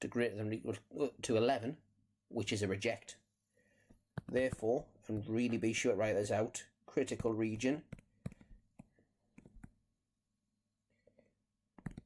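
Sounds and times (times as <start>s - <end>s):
stylus tapping on tablet screen: 3.8s - 5.6s, 7.0s - 9.9s, 11.1s - 12.0s.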